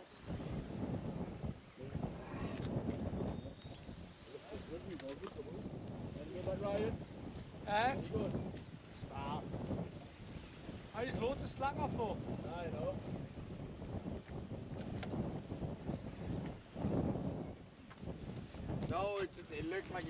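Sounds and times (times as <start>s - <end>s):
sea: 0.0s - 20.0s
wind buffeting microphone: 0.0s - 20.0s.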